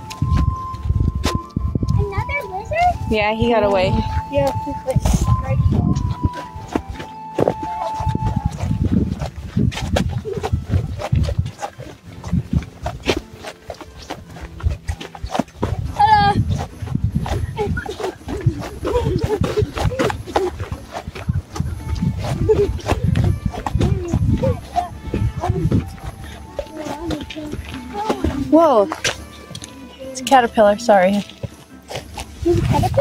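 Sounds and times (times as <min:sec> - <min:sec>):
low rumbling on microphone: 0:00.0 - 0:13.4, 0:14.1 - 0:28.6
footsteps on gravel: 0:00.0 - 0:33.0.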